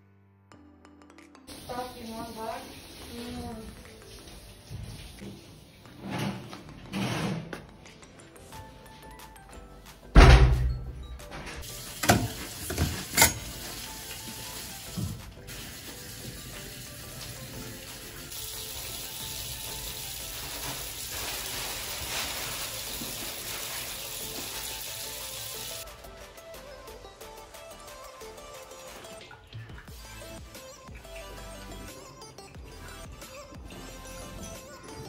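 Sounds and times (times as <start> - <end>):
faint music: 0.6 - 35.0
tap water running: 1.5 - 6.0, 11.6 - 25.8.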